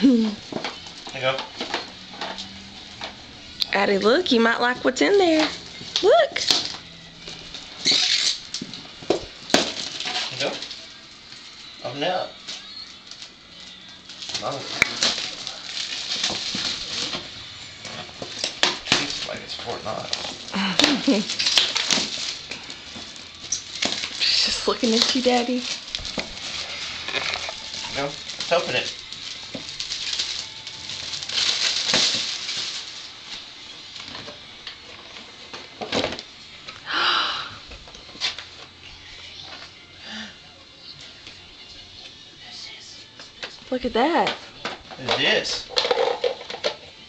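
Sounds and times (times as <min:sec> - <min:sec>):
foil gift wrap crinkling: 0:00.0 - 0:37.0.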